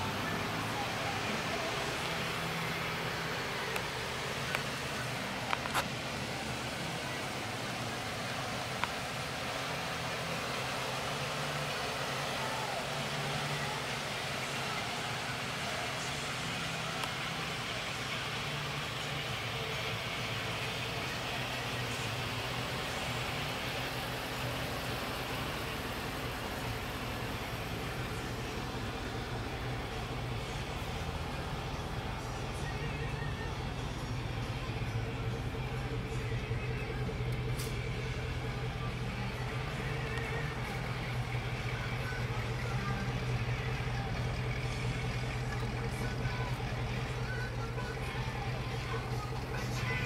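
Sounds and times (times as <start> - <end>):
faint outdoor background noise: 0.0 - 50.0
vehicle engine idling: 0.0 - 50.0.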